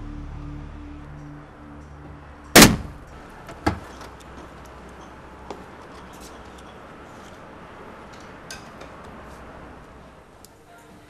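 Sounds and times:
quieter bang: 2.5 - 3.8
pistol shot: 2.6 - 3.0.

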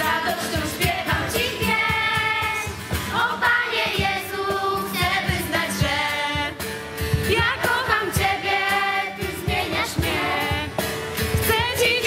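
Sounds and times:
girls singing a hymn: 0.0 - 6.6, 7.2 - 10.8, 11.4 - 12.0
strummed acoustic guitar: 0.0 - 12.0.

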